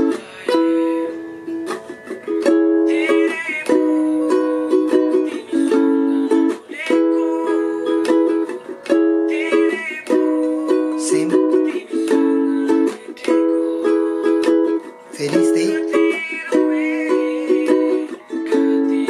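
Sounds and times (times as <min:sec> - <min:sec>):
ukulele strumming: 0:00.0 - 0:19.0.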